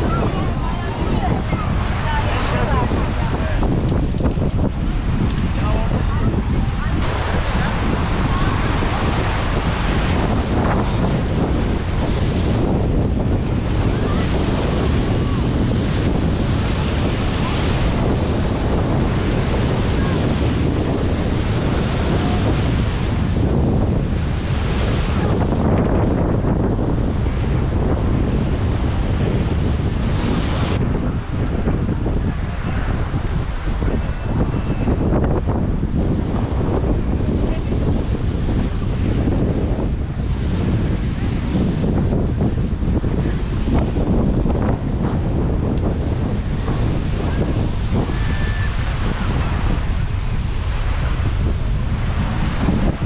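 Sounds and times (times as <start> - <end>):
waves washing onto beach: 0.0 - 53.0
wind buffeting microphone: 0.0 - 53.0.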